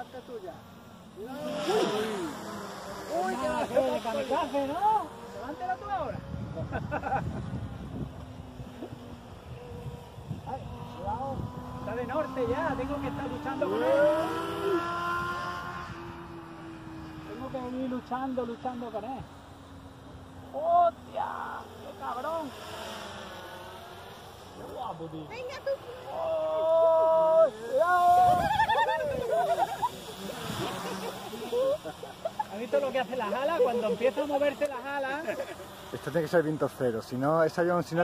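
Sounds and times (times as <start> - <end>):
model aircraft motor whine: 0.0 - 38.0.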